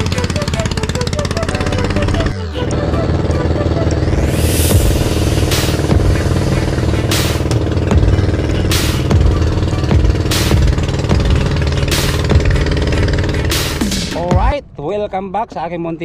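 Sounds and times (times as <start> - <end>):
boat engine running: 0.0 - 14.5.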